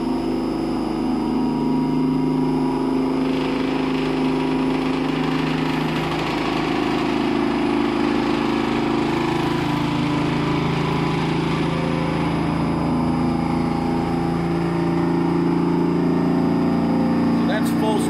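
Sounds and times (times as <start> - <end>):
centrifuge mechanical hum: 0.0 - 18.0.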